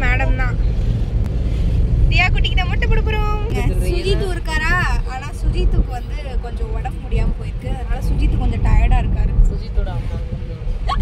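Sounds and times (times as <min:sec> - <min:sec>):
car interior rumble: 0:00.0 - 0:11.0
passengers speaking: 0:02.1 - 0:11.0.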